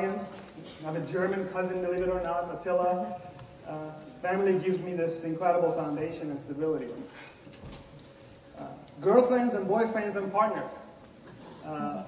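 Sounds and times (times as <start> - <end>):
man saying uh: 11.6 - 12.0.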